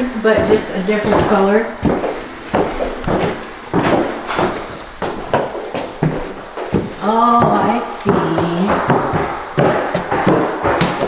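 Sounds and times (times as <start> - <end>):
footsteps on floor: 0.0 - 11.0.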